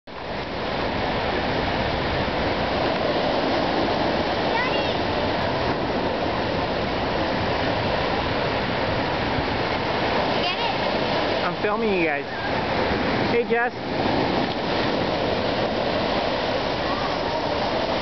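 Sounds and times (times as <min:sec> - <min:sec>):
surf washing on beach: 0:00.1 - 0:18.0.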